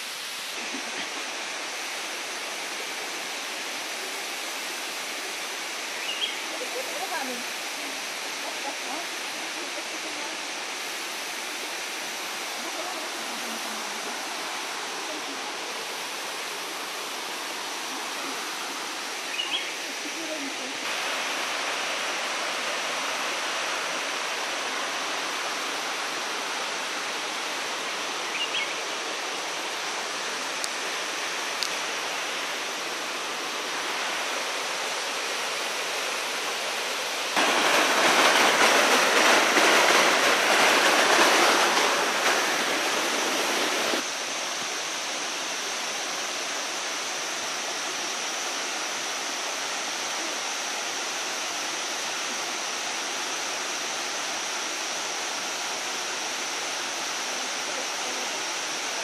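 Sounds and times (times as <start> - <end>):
water rushing over rock: 0.0 - 59.0.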